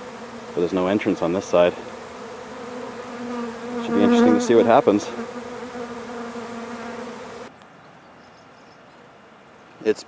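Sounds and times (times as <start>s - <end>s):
honey bees buzzing: 0.0s - 7.5s.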